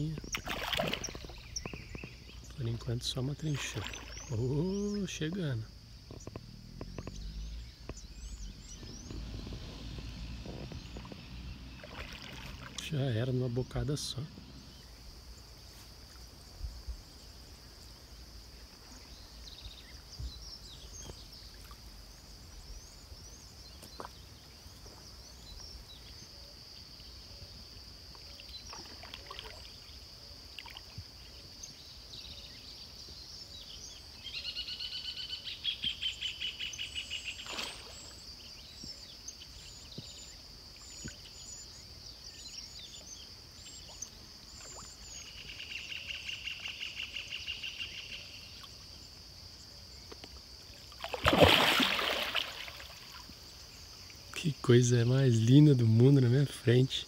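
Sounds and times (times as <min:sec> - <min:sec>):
bird chirps: 0:00.0 - 0:15.1, 0:31.6 - 0:48.6
fish splash: 0:00.2 - 0:01.8, 0:03.6 - 0:04.3, 0:11.0 - 0:12.8, 0:37.4 - 0:38.2, 0:50.9 - 0:53.3.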